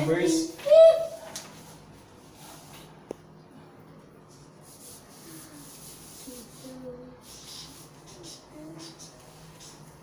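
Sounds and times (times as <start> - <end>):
marker scratching on paper: 4.6 - 10.0.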